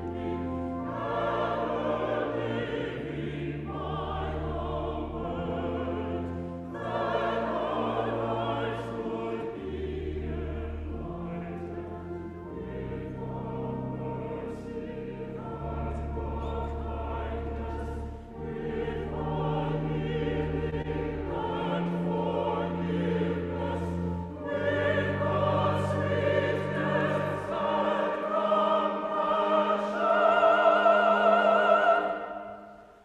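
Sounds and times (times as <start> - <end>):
church choir singing: 0.0 - 33.0.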